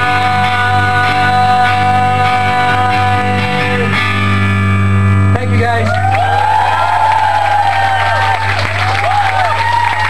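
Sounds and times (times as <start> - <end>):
distorted electric guitar chords: 0.0 - 5.9.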